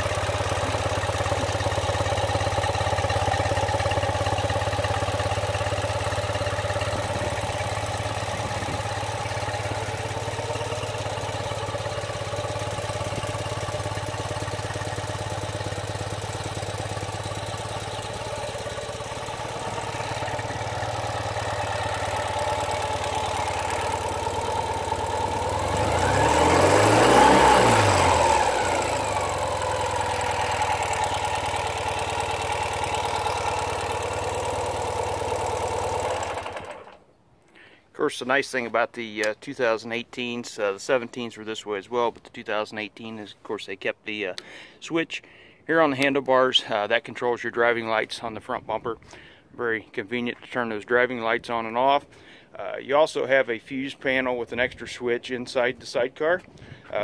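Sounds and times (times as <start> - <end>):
engine throttle blip: 0.0 - 37.1
motorcycle engine idling: 0.0 - 37.8.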